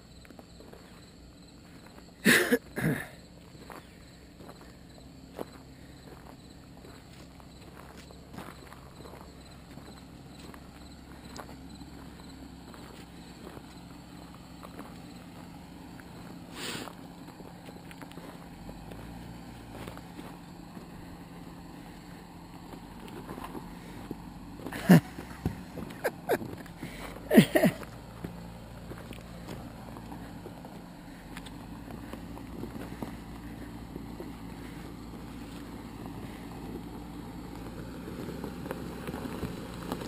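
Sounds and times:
car engine crawling: 0.0 - 40.0
footsteps: 5.3 - 21.2, 21.8 - 40.0
stones crunching: 5.3 - 40.0.

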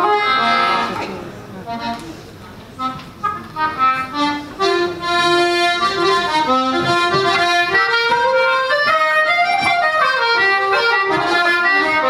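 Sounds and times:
accordion: 0.0 - 12.0
wooden flute: 6.4 - 12.0.

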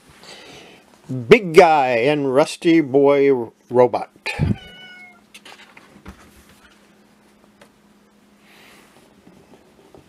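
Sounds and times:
cat meowing: 4.4 - 5.3.

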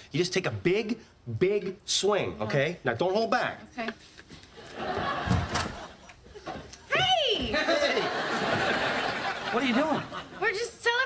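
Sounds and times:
audience laughter: 4.6 - 6.7, 7.5 - 10.6.

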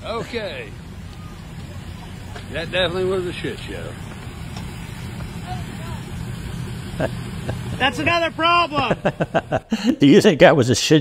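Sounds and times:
faint voices: 0.0 - 9.2
vehicle engine idling: 0.0 - 10.0.

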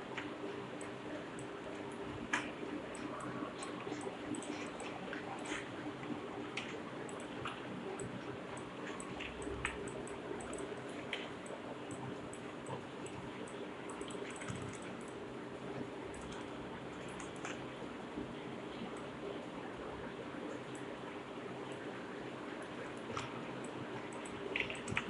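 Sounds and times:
low room hum: 0.0 - 25.0.

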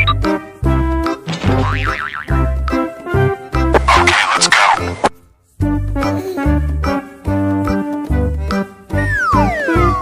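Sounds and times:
playful music with bouncy bass: 0.0 - 10.0.

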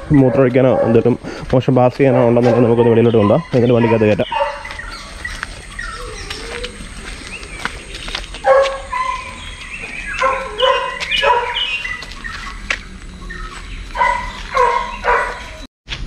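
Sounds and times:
dog yipping: 2.1 - 7.4, 8.4 - 12.0, 14.0 - 15.6.

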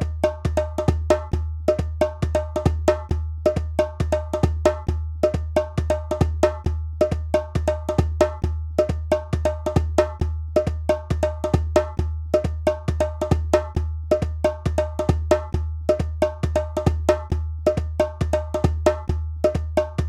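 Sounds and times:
deep low drum beat: 0.0 - 20.0.

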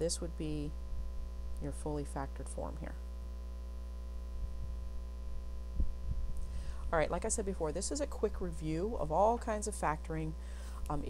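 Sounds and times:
low electrical mains hum: 0.0 - 11.0
faint low thumps: 4.2 - 7.1.

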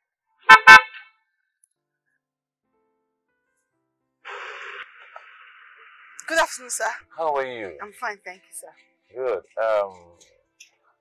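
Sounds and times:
car horn honks: 0.5 - 1.2.

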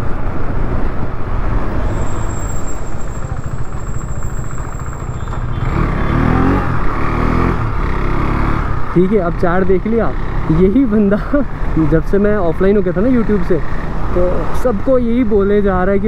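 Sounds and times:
wind and road rush: 0.0 - 16.0
motorcycle engine running: 2.9 - 8.7.

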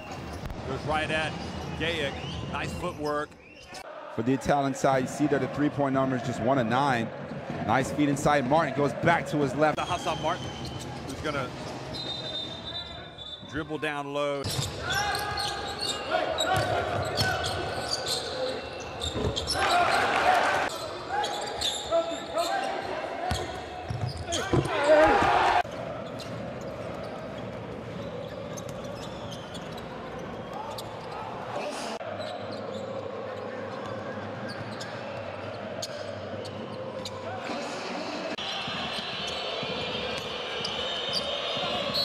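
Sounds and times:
ball bouncing on court: 16.6 - 17.6.

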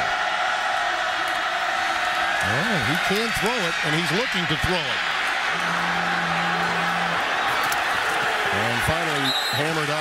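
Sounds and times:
stadium crowd roar: 0.0 - 10.0.

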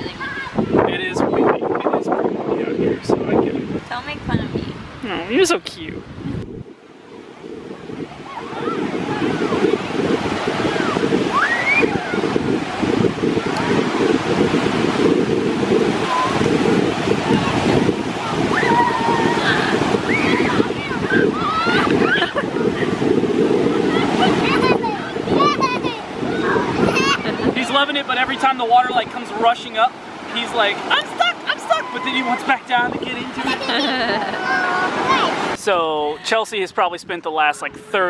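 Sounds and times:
wind buffeting microphone: 0.0 - 38.0
ocean surf breaking: 6.0 - 38.0.

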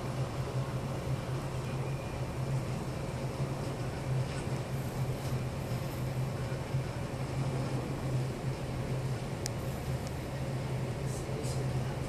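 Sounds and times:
ship machinery hum: 0.0 - 12.0.

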